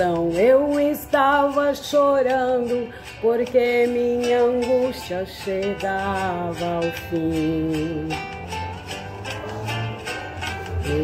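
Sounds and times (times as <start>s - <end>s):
person singing: 0.0s - 11.0s
plucked guitar: 0.0s - 11.0s.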